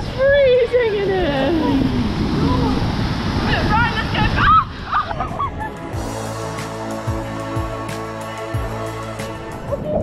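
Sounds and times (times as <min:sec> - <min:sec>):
waterfall: 0:00.0 - 0:10.0
woman shrieking: 0:04.2 - 0:04.8
background music with steady beat: 0:05.4 - 0:10.0.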